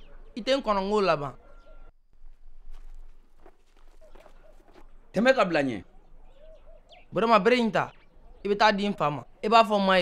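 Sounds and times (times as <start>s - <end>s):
footsteps on dry ground: 2.0s - 5.3s.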